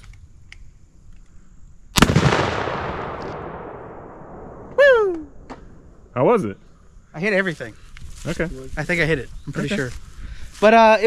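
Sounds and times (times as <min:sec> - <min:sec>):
loud gunshot: 0:02.0 - 0:04.7.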